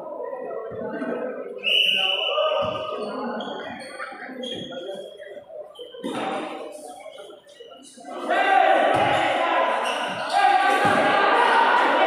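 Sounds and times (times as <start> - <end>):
echoing voices: 0.0 - 12.0.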